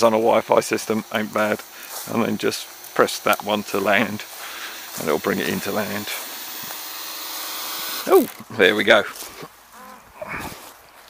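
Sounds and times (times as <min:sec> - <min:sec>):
drone propellers whirring: 0:00.0 - 0:10.7.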